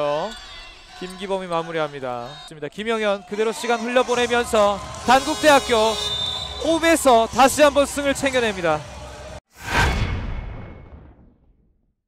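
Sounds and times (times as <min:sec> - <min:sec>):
impact hit with tail: 0:09.6 - 0:11.9.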